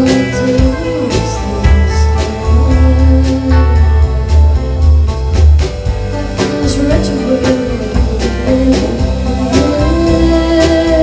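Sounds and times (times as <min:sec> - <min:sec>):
woman singing: 0:00.0 - 0:05.1, 0:06.1 - 0:11.0
country-folk band playing: 0:00.0 - 0:11.0.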